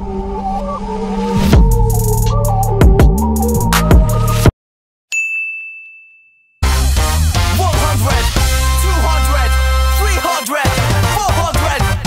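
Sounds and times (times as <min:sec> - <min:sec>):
high bell-like ding: 0:05.1 - 0:06.6
loud electronic music: 0:06.6 - 0:12.0.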